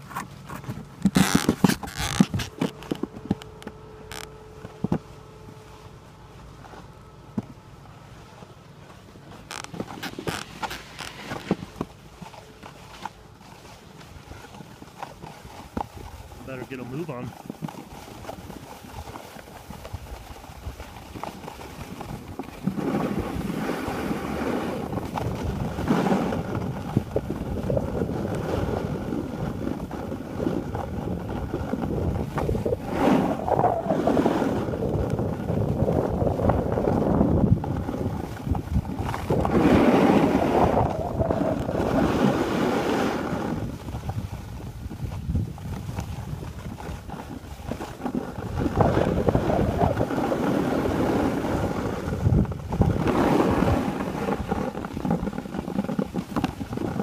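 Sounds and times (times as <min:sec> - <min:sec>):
skis scraping on snow: 0:00.0 - 0:03.4, 0:08.0 - 0:57.0
wind on microphone: 0:15.4 - 0:57.0.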